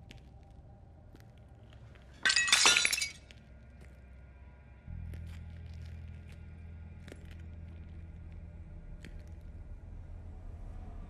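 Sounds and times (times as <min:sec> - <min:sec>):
glass shattering: 0:02.2 - 0:03.3.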